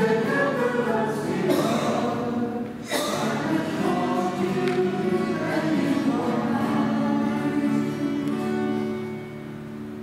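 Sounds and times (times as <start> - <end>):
choir singing a hymn: 0.0 - 9.2.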